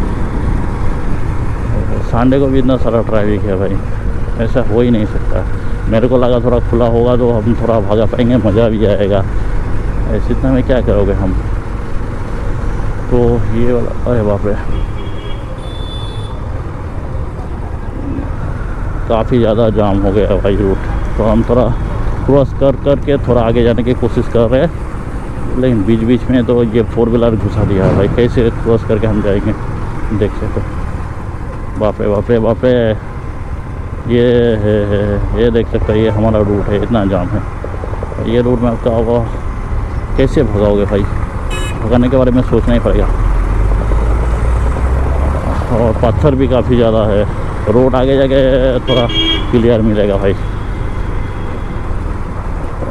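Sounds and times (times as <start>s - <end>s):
motorcycle engine and road rumble: 0.0s - 52.9s.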